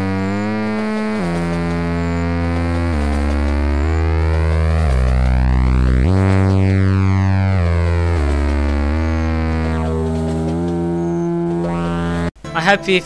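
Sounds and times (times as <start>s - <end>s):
synthesizer music with bass notes: 0.0s - 12.5s.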